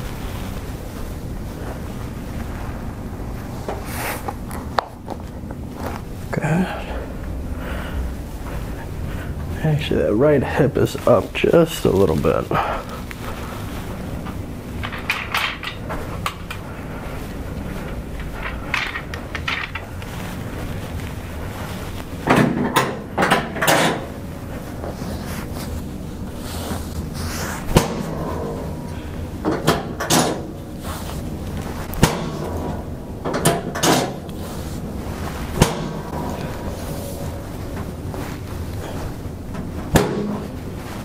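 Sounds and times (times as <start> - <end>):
rustling on padded table: 0.0 - 6.3, 8.0 - 22.3, 24.0 - 29.5, 30.5 - 33.0, 34.2 - 41.0.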